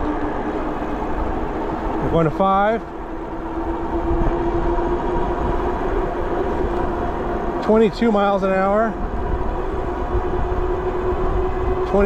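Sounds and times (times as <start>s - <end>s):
electric motor whine: 0.0s - 12.0s
wind rushing on microphone: 0.0s - 12.0s.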